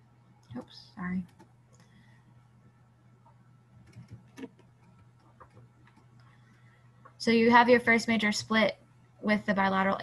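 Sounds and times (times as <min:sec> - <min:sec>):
low steady hum: 0:00.0 - 0:10.0
faint computer clicks: 0:00.4 - 0:02.0, 0:03.8 - 0:07.2.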